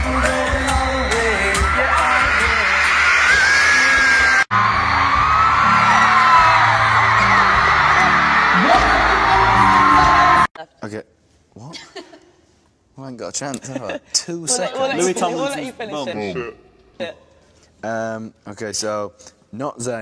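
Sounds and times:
singing over a band: 0:00.0 - 0:04.6
crowd of fans screaming: 0:00.0 - 0:10.5.

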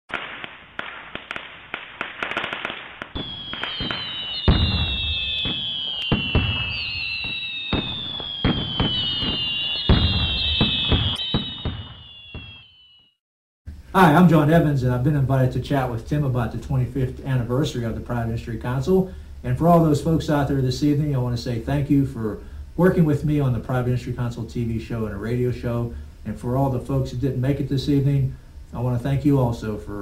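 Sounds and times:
fireworks bangs and crackles: 0:00.1 - 0:12.8
falling whistle tones: 0:03.2 - 0:13.2.

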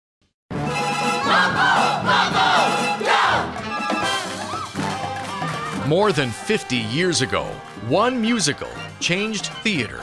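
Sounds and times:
show music: 0:00.5 - 0:10.0
performers shouting and whooping: 0:01.2 - 0:05.9.

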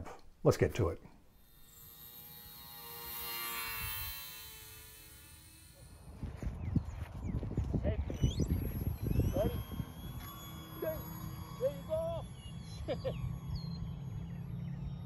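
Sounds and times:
rc airplane motor whine: 0:01.3 - 0:06.8, 0:08.2 - 0:15.0
wind buffeting microphone: 0:06.0 - 0:10.2.

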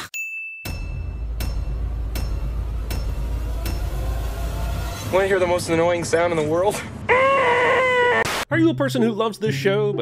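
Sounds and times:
high bell ding: 0:00.1 - 0:02.5.

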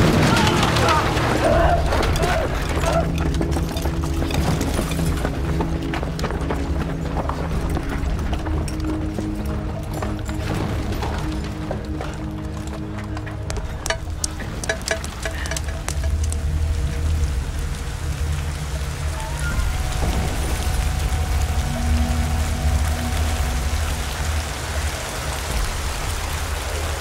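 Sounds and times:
low droning film score: 0:00.0 - 0:27.0
steady rain falling: 0:00.0 - 0:27.0.

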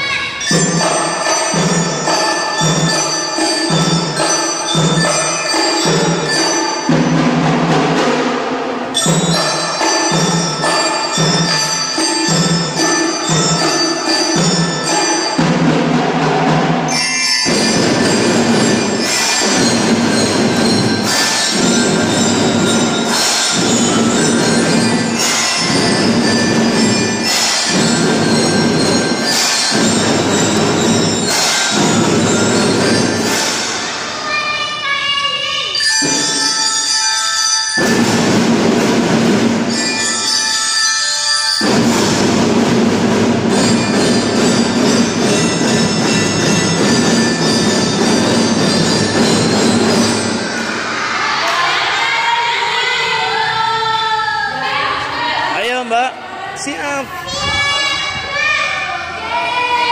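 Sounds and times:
mallet instruments playing tune: 0:00.0 - 0:34.4, 0:35.4 - 0:51.9
percussion keeping time: 0:00.0 - 0:53.9, 0:54.9 - 0:59.9.

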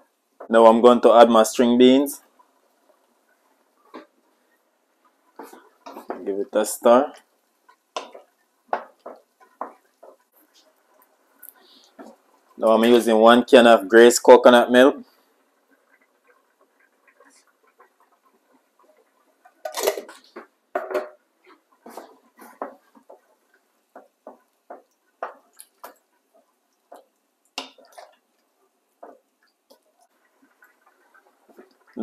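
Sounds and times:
wooden spoon stirring stew in pot: 0:00.0 - 0:32.0.

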